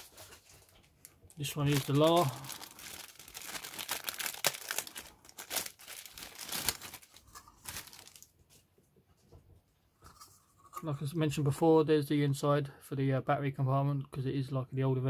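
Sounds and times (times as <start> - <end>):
plastic bag crinkling: 0.0 - 8.4.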